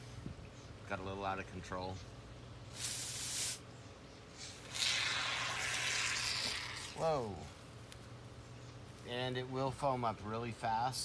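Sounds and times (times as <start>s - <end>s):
aerosol can spraying hiss: 2.7s - 3.6s.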